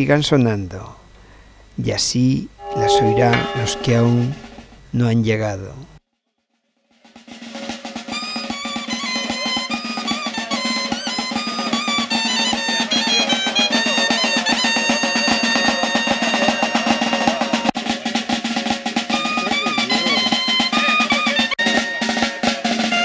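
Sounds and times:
shrill reed pipe melody: 2.6s - 4.7s, 8.3s - 17.6s, 19.0s - 23.0s
side drum strokes: 2.6s - 4.9s, 7.0s - 23.0s.

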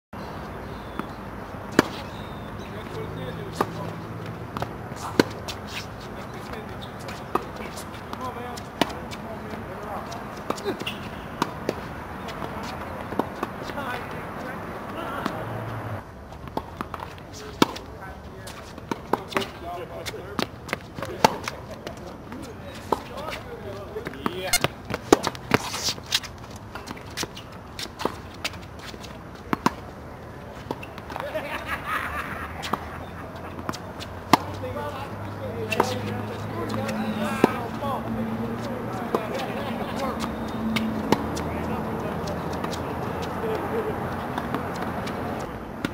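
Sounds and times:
tennis ball bouncing on court: 0.7s - 17.9s, 18.5s - 23.4s, 24.0s - 30.0s, 30.6s - 31.4s, 32.5s - 45.9s
tennis ball hitting racket: 0.8s - 17.9s, 18.5s - 23.4s, 24.0s - 29.9s, 32.5s - 45.9s.

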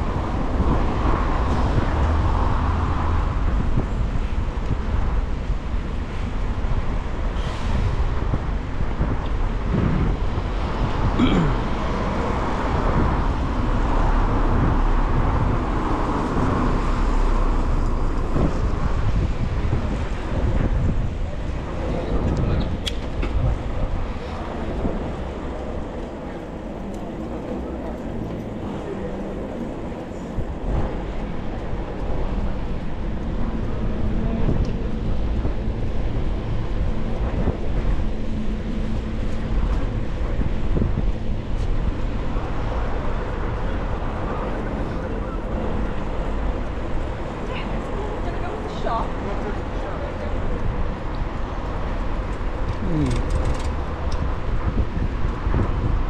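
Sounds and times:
city traffic: 0.0s - 56.0s
tyres on wet road: 0.0s - 56.0s
wind rushing over microphone: 0.0s - 56.0s.

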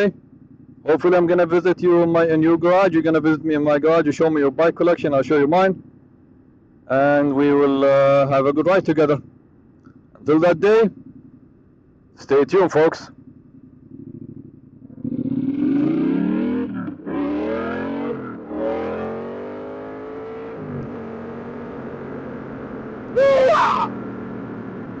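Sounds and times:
motorcycle engine accelerating: 0.0s - 25.0s
short loud voice-like sound: 23.1s - 23.9s.

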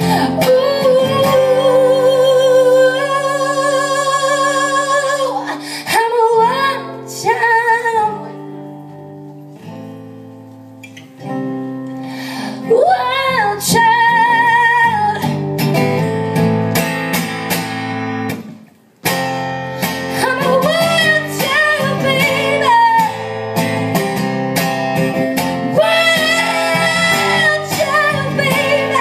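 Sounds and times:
woman singing: 0.0s - 8.7s, 12.5s - 15.4s, 20.0s - 23.4s, 25.6s - 29.0s
strummed acoustic guitar: 0.0s - 29.0s.

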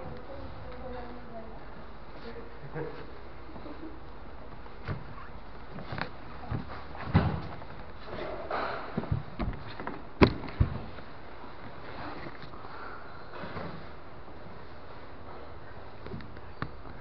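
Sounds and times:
bodies thumping on a foam mat: 4.8s - 11.0s.

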